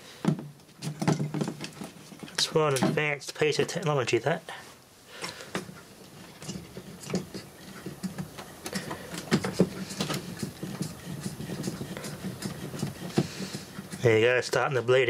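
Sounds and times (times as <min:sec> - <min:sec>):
ink pump humming: 0:05.1 - 0:14.7.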